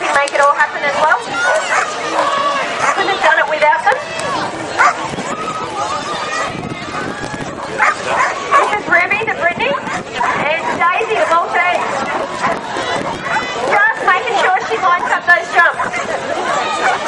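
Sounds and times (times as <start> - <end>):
din of people's voices and calls: 0.0 - 17.0
dogs barking: 1.4 - 2.0, 2.7 - 3.2, 4.7 - 5.2, 6.3 - 8.8, 9.6 - 11.0, 11.6 - 13.6, 15.8 - 17.0.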